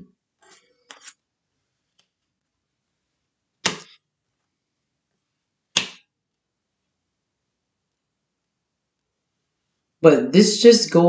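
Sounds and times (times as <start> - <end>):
cards snapping down on table: 3.6 - 4.0, 5.8 - 6.0.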